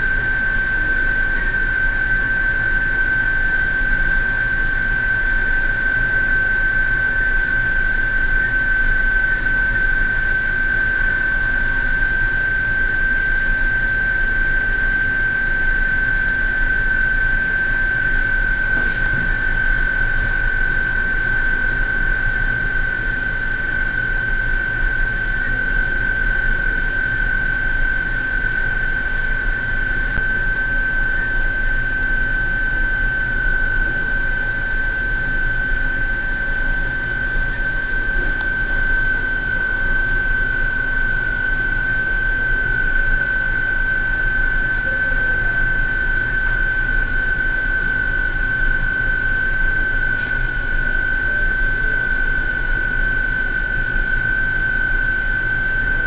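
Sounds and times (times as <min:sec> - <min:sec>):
crane machinery hum and whine: 0:00.0 - 0:56.0.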